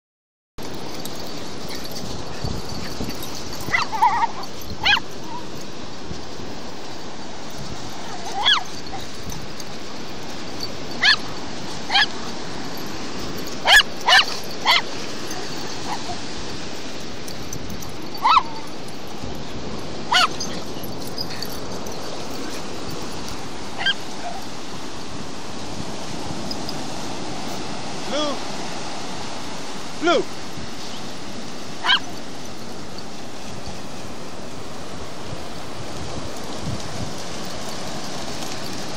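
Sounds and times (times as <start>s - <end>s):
dogs barking and yipping: 0.6s - 24.7s, 31.7s - 33.9s
ocean surf rushing: 0.6s - 38.9s.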